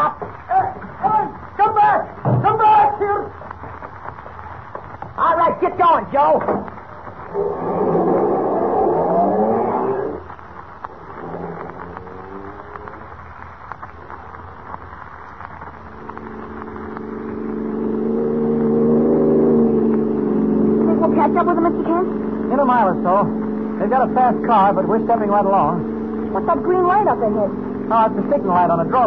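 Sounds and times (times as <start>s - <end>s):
man's voice: 0.0s - 3.4s, 5.2s - 6.6s, 20.8s - 29.0s
car engine pulling away: 6.2s - 29.0s.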